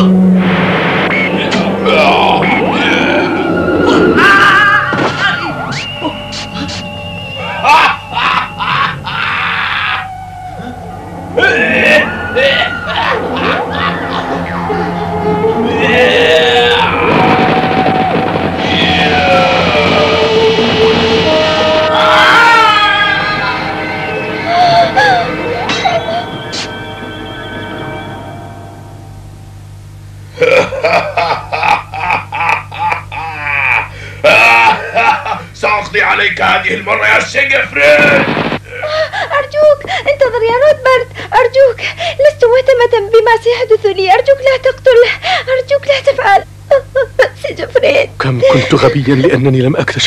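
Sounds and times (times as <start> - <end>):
burst of rushing noise: 0.0 - 5.2, 16.5 - 25.1, 37.9 - 38.6
cartoon villain laughing: 7.4 - 10.1, 11.4 - 15.1, 24.5 - 26.7, 30.4 - 35.4
cartoon characters screaming: 7.7 - 10.1, 15.6 - 20.2, 21.8 - 23.7.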